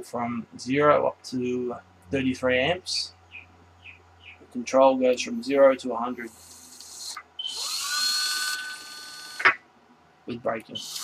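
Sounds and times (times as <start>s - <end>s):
small motor whine: 6.3s - 9.4s, 10.8s - 11.0s.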